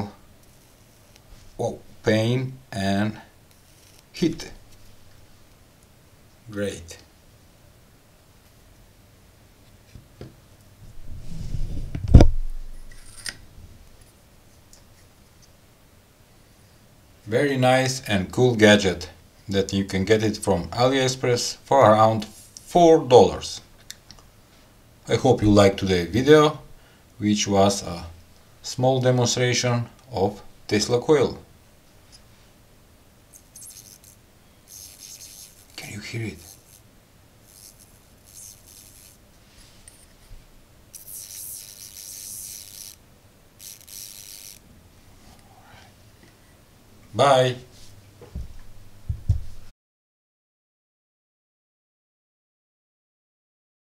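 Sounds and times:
rustle: 31.5 - 49.7
tesla coil crackling hiss: 33.3 - 39.2, 40.9 - 43.0, 43.6 - 44.6.

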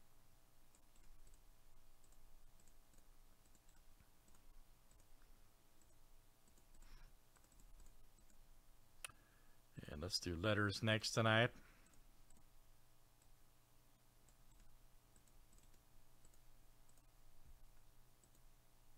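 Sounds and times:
computer mouse clicks: 0.7 - 8.4, 11.8 - 12.5, 14.2 - 18.5.

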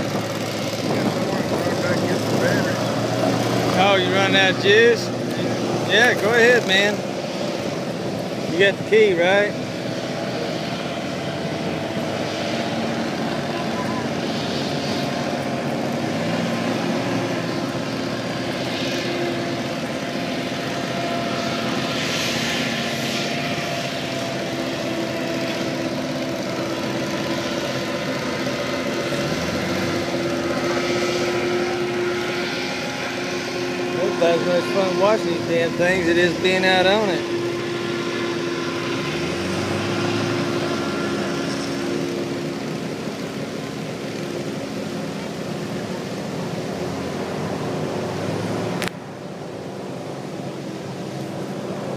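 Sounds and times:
hovercraft engine drone: 0.0 - 51.9.

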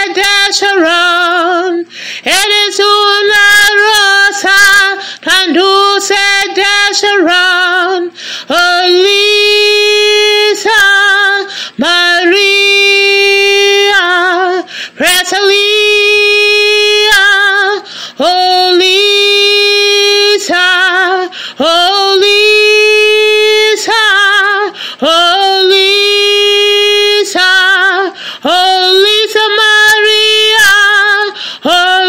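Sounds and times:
woman singing unaccompanied: 0.0 - 32.0
singer taking a breath: 1.9 - 2.3, 8.1 - 8.5, 11.5 - 11.8, 14.7 - 15.0, 17.8 - 18.2, 21.3 - 21.6, 24.8 - 25.0, 28.1 - 28.4, 31.3 - 31.7.

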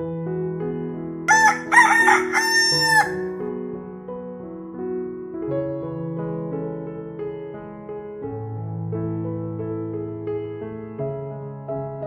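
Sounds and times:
soft piano music: 0.0 - 12.0
rooster crowing: 1.3 - 3.4.

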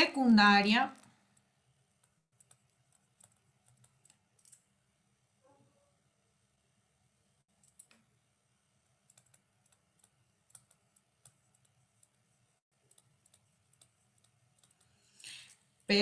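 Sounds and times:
stylus tapping on tablet screen: 9.1 - 12.2, 12.8 - 15.0.

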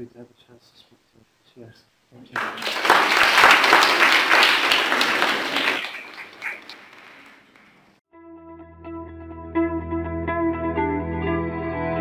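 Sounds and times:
audience applause: 2.4 - 7.9.

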